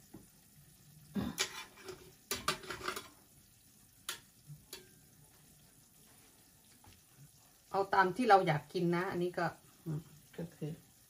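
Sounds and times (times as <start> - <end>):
faint cheese sizzling on grill: 0.0 - 11.0.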